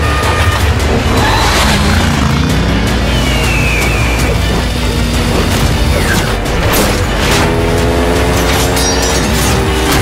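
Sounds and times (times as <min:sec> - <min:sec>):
action film music: 0:00.0 - 0:10.0
motorbike engine revving: 0:00.6 - 0:10.0.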